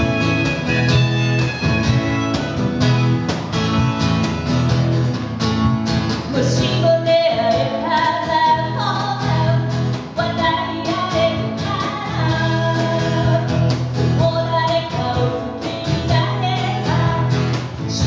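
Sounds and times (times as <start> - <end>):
cajon beat: 0.0 - 18.0
strummed acoustic guitar: 0.0 - 18.0
woman singing: 6.3 - 18.0.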